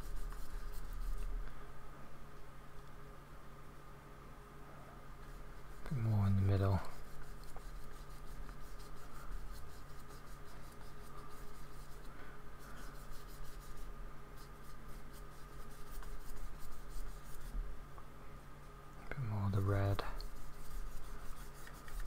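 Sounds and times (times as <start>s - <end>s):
paintbrush scratchy rubbing: 0.0s - 1.3s, 5.2s - 17.6s, 19.6s - 22.0s.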